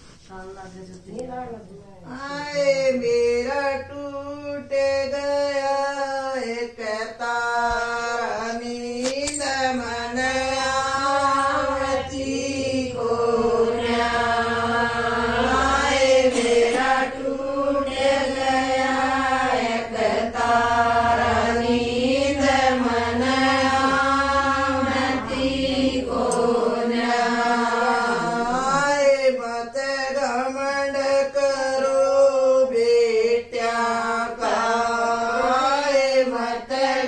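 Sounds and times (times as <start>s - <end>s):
women singing a folk song: 6.5s - 29.2s, 32.6s - 37.0s.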